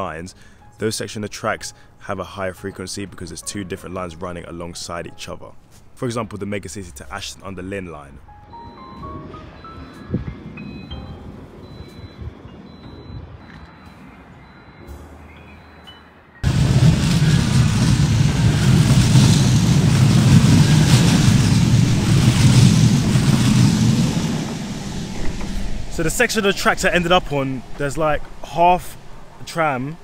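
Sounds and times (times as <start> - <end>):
tram moving off: 6.1 - 30.0
quiet music with mallet notes: 8.2 - 14.0.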